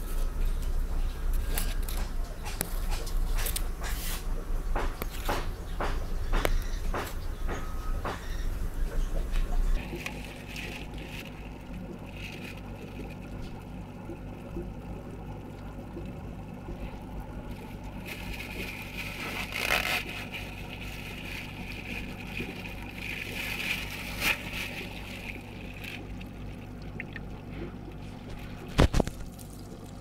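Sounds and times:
steady low hum: 0.0s - 30.0s
water sloshing and trickling: 0.0s - 30.0s
water splashes: 9.8s - 30.0s.

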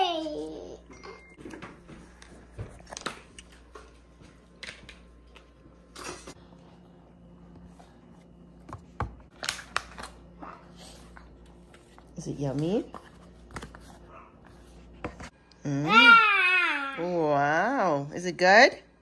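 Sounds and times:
toddler high-pitched vocal: 15.8s - 17.1s.

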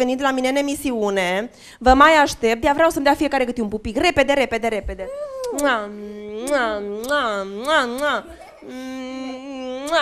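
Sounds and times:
humming kissing voice sounds: 5.0s - 10.0s.

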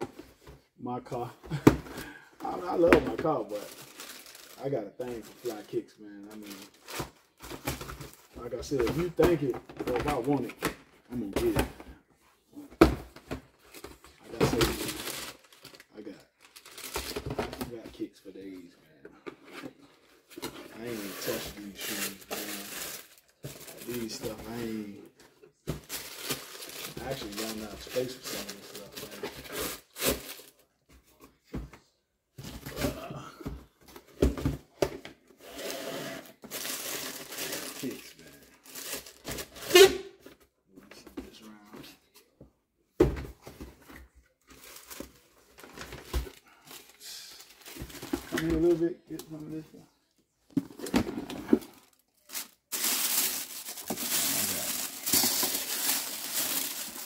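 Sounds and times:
tissue paper crinkling: 3.6s - 5.8s, 20.8s - 24.6s, 25.8s - 30.6s, 36.5s - 39.6s, 51.6s - 57.0s
cardboard boxes rustling: 43.1s - 48.8s, 50.5s - 57.0s.

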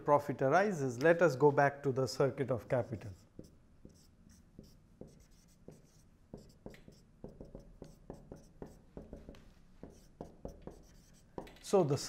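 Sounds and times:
marker writing on whiteboard: 2.7s - 11.6s.

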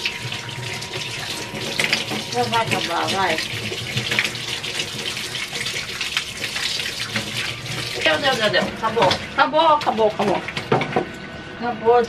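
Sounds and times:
tap water running and splashing: 0.0s - 11.3s.

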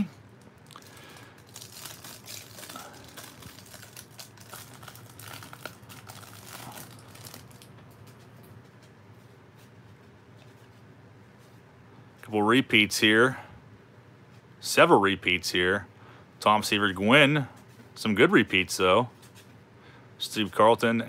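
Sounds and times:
cellophane wrapper crinkling and tearing: 0.3s - 8.3s.

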